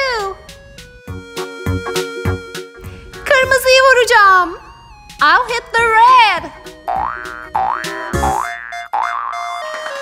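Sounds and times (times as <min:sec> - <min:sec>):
light background music: 0:00.0 - 0:08.4
cartoon boing effects: 0:06.9 - 0:09.7.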